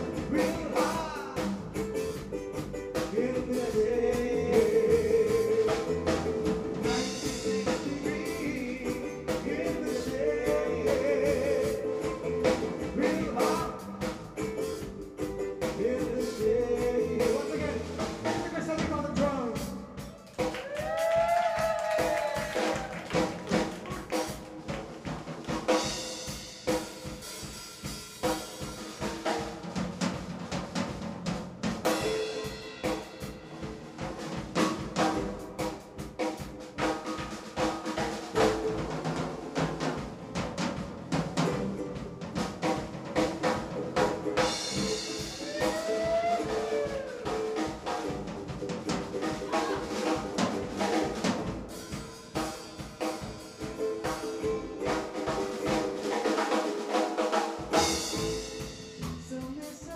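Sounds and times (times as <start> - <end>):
ukulele notes: 0.0 - 15.8
bass notes: 0.0 - 20.2, 29.2 - 37.0, 38.0 - 56.1, 57.7 - 59.9
drum kit playing: 0.0 - 59.9.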